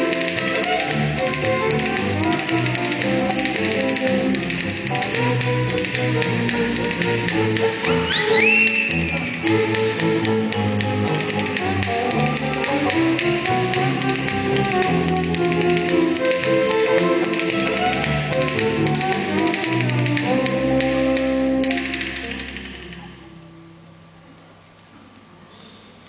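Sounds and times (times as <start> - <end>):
live band with violin: 0.0 - 23.0
fast percussion tapping: 0.0 - 23.2.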